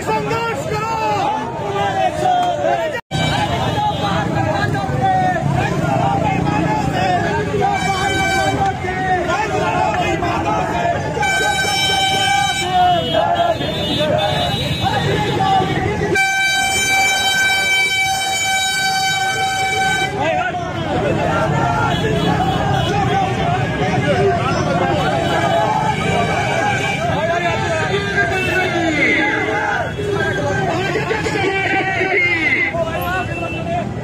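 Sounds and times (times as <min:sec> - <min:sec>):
street crowd noise: 0:00.0 - 0:34.0
vehicle horn honking: 0:07.6 - 0:08.8, 0:11.2 - 0:15.3, 0:16.1 - 0:20.2.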